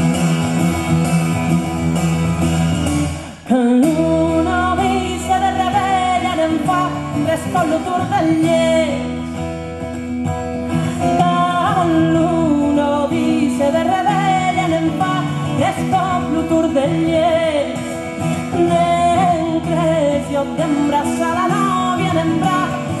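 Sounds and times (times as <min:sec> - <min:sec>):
strummed acoustic guitar: 0:00.0 - 0:23.0
woman singing folk song: 0:00.3 - 0:23.0.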